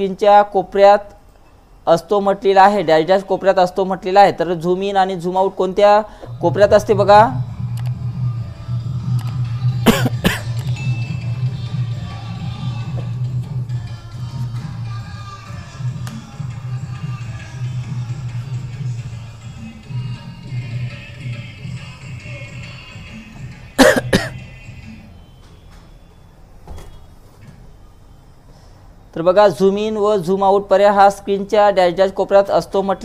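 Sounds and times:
person coughing: 0:09.8 - 0:10.6, 0:23.8 - 0:24.4.

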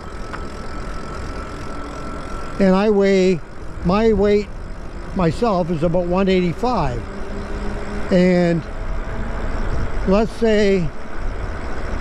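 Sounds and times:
electric motor whine: 0:00.0 - 0:12.0
wind rumble on microphone: 0:03.7 - 0:12.0.

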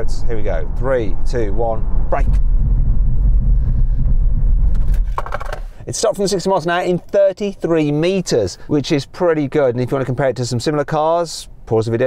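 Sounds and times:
road and tyre rumble in car: 0:00.0 - 0:05.9.

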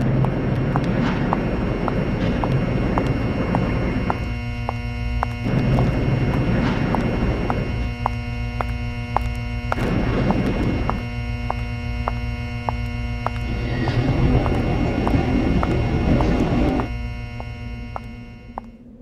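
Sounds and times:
droning humming tones: 0:00.0 - 0:19.0
rough low rumbling noise: 0:00.0 - 0:19.0.

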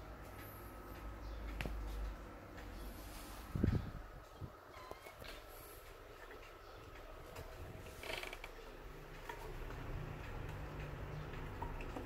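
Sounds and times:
gramophone clockwork ticking and hum: 0:00.0 - 0:04.7, 0:05.4 - 0:12.0.

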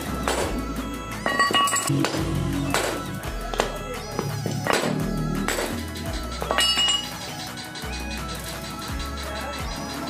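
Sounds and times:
background music: 0:00.0 - 0:10.0
metal parts clinking: 0:01.2 - 0:01.9, 0:06.4 - 0:07.1.

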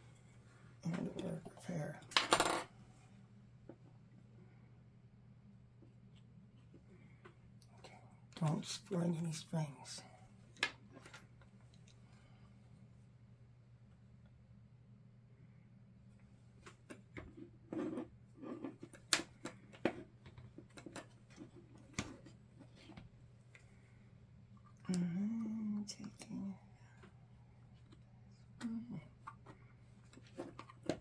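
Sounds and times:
steady low hum: 0:11.2 - 0:31.0.

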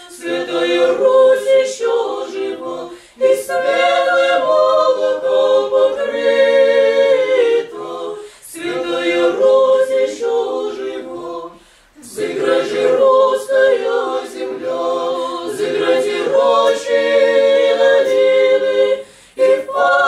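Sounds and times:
choir singing a cappella chant: 0:00.0 - 0:20.0.

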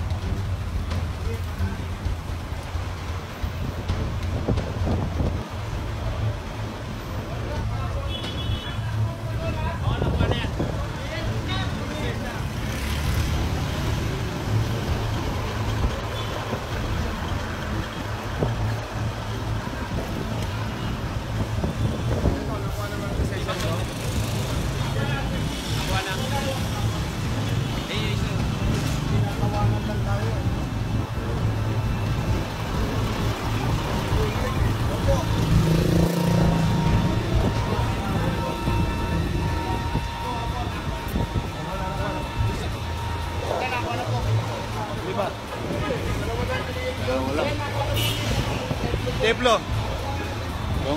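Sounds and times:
truck diesel engines rumbling: 0:00.0 - 0:50.9
people talking: 0:00.9 - 0:02.7, 0:03.6 - 0:50.9.

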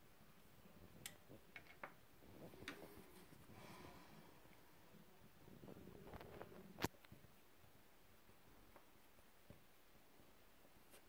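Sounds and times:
faint rustle of foam pieces: 0:02.1 - 0:11.0.

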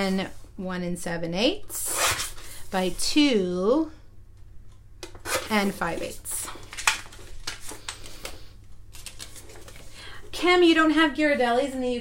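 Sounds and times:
paper rustling: 0:05.3 - 0:09.9.

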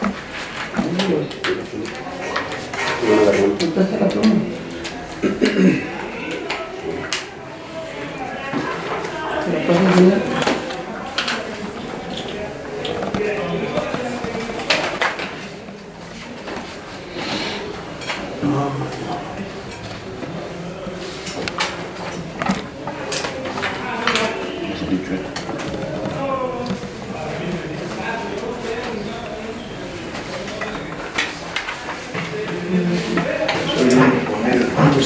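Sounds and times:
indistinct conversation: 0:00.0 - 0:35.0.

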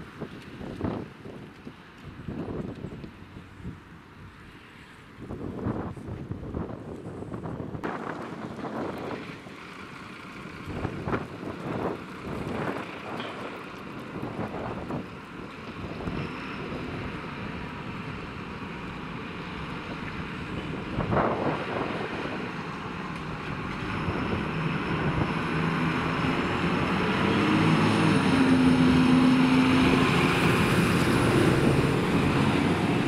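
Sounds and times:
wind buffeting microphone: 0:00.0 - 0:04.4, 0:05.2 - 0:09.6, 0:10.5 - 0:33.0
street and vehicle noise: 0:00.0 - 0:33.0
diesel truck engine running: 0:06.9 - 0:33.0.

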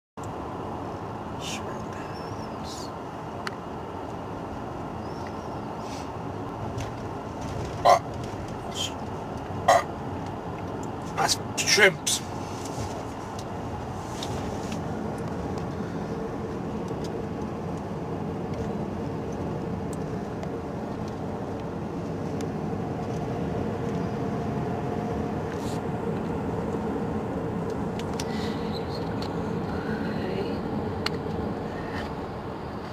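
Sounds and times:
car driving at highway speed: 0:00.2 - 0:32.9.

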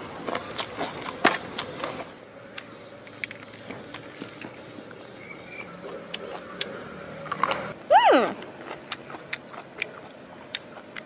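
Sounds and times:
person chewing leafy herbs: 0:00.0 - 0:11.0.

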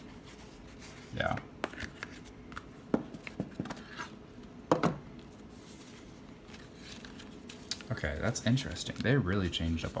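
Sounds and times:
paper and cardboard rustling: 0:05.3 - 0:10.0.

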